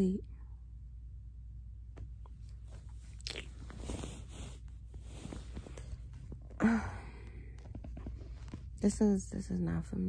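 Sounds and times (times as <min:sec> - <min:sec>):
bedding fabric rustling: 0:02.4 - 0:06.5.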